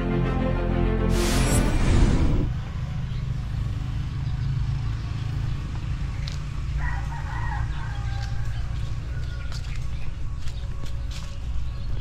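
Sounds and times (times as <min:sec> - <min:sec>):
steady low rumble: 0:00.8 - 0:03.1
rooster crowing: 0:06.8 - 0:09.8.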